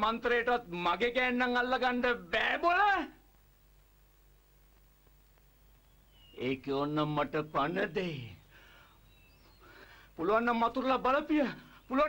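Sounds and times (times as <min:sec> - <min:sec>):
man speaking: 0:00.0 - 0:03.2, 0:06.4 - 0:08.4, 0:10.2 - 0:12.0.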